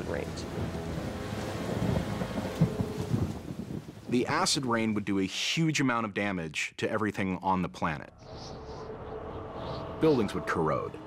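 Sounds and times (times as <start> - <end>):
thunder rumbling: 0.0 - 4.3
rain: 0.0 - 5.0.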